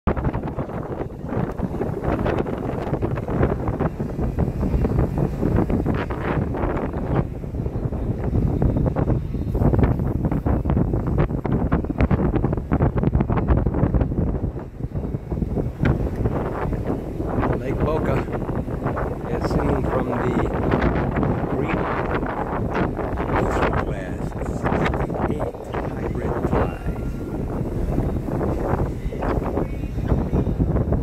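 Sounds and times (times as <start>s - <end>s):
wind buffeting microphone: 0.1s - 31.0s.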